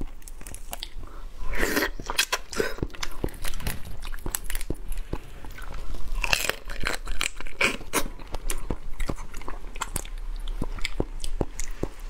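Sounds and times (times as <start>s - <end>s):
person chewing crab: 0.0s - 12.0s
crab shell crunching: 1.9s - 12.0s.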